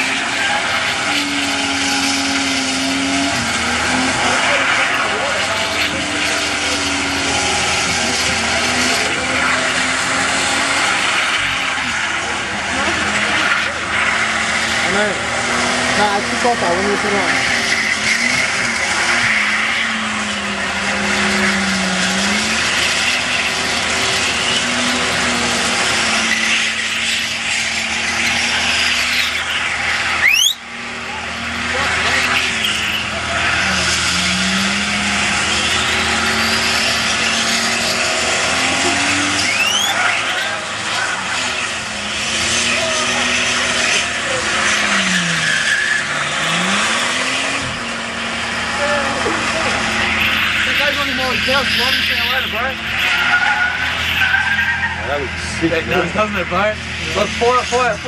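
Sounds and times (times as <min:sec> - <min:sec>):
car engine revving high: 0:00.0 - 0:58.0
tyres screeching: 0:00.0 - 0:58.0.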